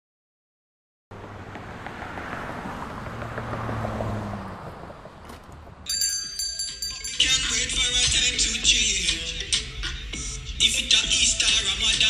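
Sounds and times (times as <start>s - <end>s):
vehicle drone: 1.1s - 5.9s
music with chiming synth notes: 5.9s - 8.4s.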